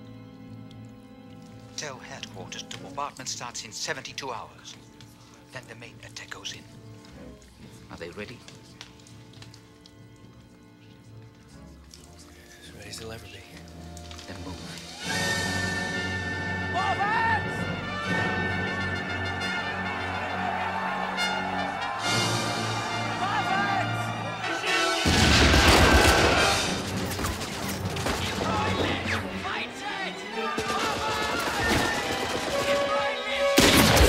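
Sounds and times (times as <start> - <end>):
film score music: 0.0 - 34.0
loud explosion: 25.0 - 27.0
gunfire and blasts: 25.1 - 28.5, 30.6 - 33.0, 33.6 - 34.0.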